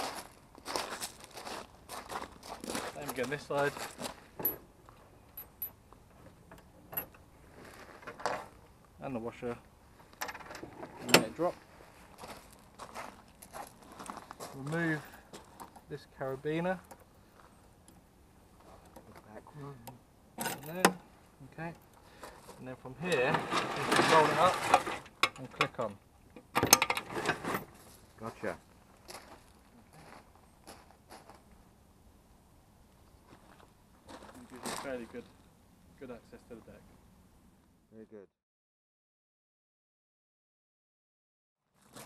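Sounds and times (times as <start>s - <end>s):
footsteps on gravel: 0.0s - 4.4s, 11.4s - 15.8s, 27.6s - 31.5s, 33.3s - 35.3s.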